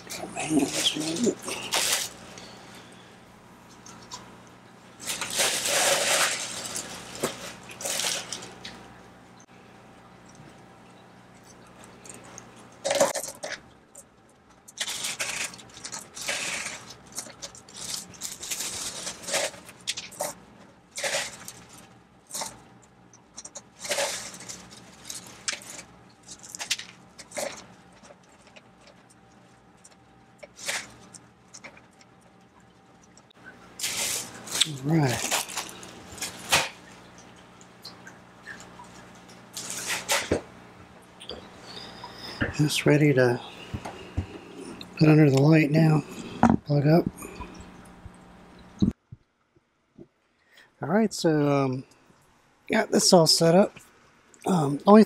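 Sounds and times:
plastic bag crinkling: 0.0 - 3.0, 5.0 - 8.9, 14.6 - 22.7, 23.3 - 32.4, 33.4 - 37.8, 38.4 - 40.5
low steady hum: 0.0 - 55.0.

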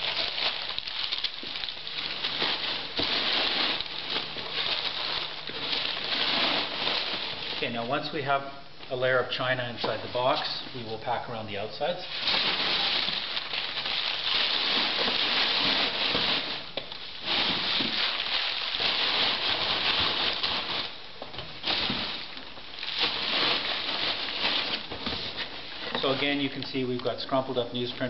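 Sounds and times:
newspaper crumpling and rustling: 0.0 - 8.1, 12.0 - 27.2.

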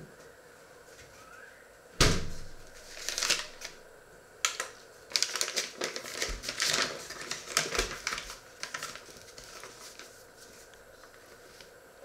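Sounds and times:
thump: 2.0 - 2.5
paper bag crinkling: 2.4 - 3.8, 4.4 - 11.8.

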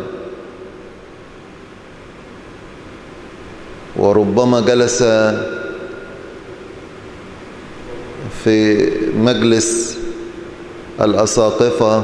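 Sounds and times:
room noise hiss: 0.0 - 12.0
person speaking: 7.8 - 10.2.

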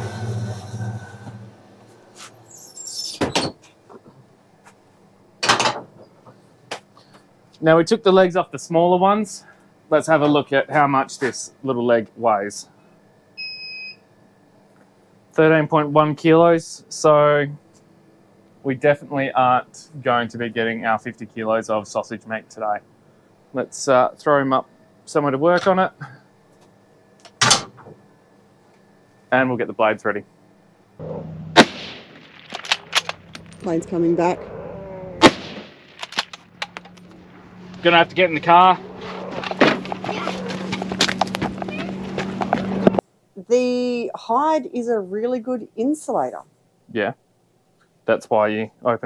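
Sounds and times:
rifle shot with echo: 31.6 - 33.1, 35.2 - 36.0.

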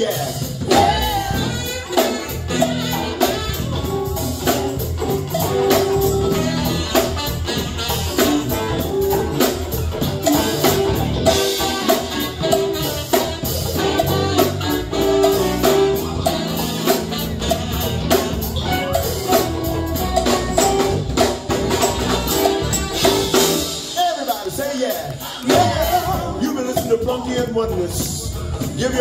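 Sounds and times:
saxophone melody: 0.0 - 24.0
drum kit beat: 0.0 - 29.0.

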